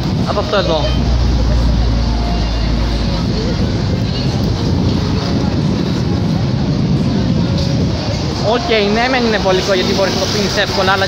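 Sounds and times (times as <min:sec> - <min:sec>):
faint voices: 0:00.0 - 0:11.0
steady low street rumble: 0:00.0 - 0:11.0.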